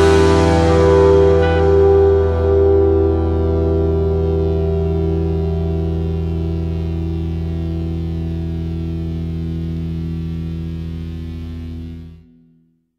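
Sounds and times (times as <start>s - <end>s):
electric guitar and bass chord ringing: 0.0s - 12.6s.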